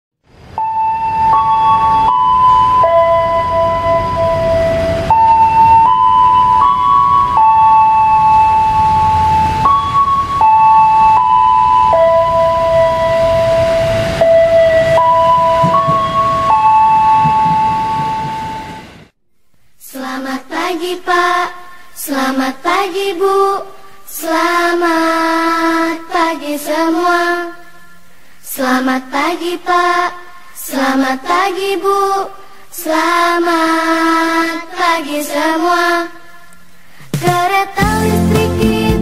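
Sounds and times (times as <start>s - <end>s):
electronic tone melody: 0.5s - 19.1s.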